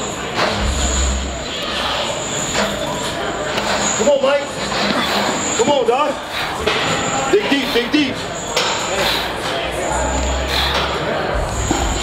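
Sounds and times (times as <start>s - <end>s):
steady noisy background: 0.0s - 12.0s.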